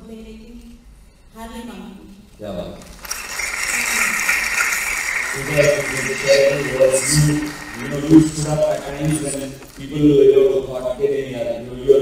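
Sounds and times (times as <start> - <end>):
audience applause: 2.9 - 10.0.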